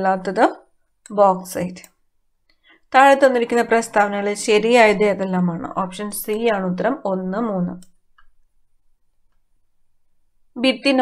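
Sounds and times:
woman speaking: 0.0s - 2.0s, 2.9s - 7.9s, 10.5s - 11.0s.

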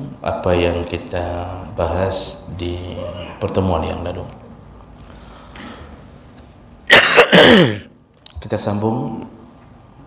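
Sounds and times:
man clearing his throat: 6.9s - 7.9s.

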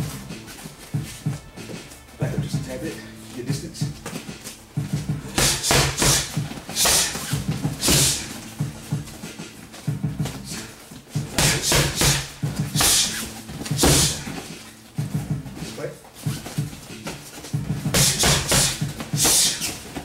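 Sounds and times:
punches and kicks hitting pads: 4.8s - 10.4s, 11.1s - 15.6s, 16.3s - 20.0s.

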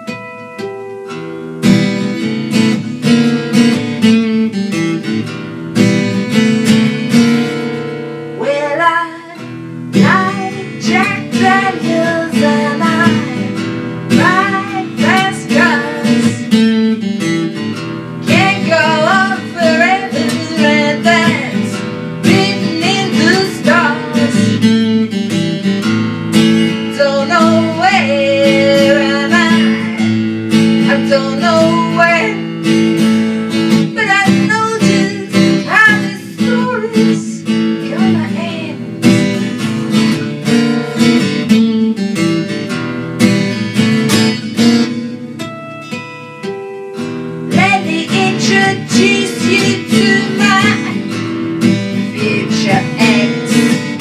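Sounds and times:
strummed acoustic guitar: 0.0s - 54.0s
woman singing: 8.3s - 16.7s, 18.2s - 25.2s, 26.7s - 30.2s, 30.8s - 32.6s, 33.9s - 39.4s, 47.5s - 54.0s.

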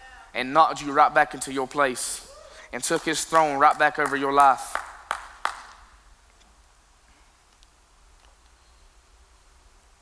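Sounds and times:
sharp clicks in reverberant hall: 2.8s - 6.6s, 7.5s - 8.6s.

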